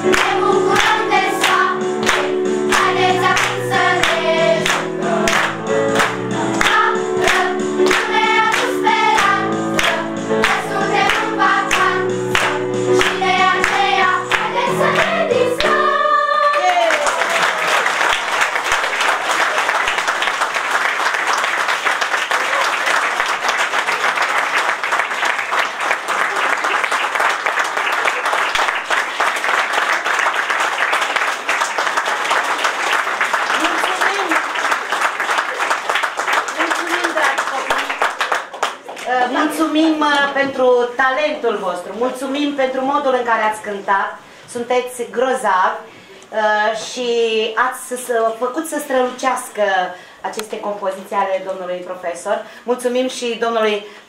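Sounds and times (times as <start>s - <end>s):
children singing a song: 0.0s - 16.9s
sustained applause: 15.0s - 39.1s.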